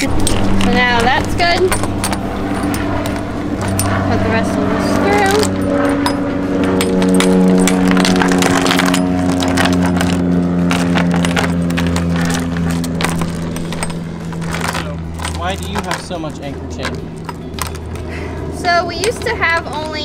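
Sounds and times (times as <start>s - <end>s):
anchor chain clinking and rattling: 0.0s - 20.0s
low droning hum: 0.0s - 20.0s.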